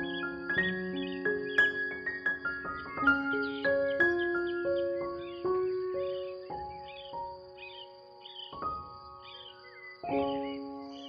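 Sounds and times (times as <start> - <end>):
birds chirping: 0.0 - 11.0
gentle piano music: 0.0 - 11.0.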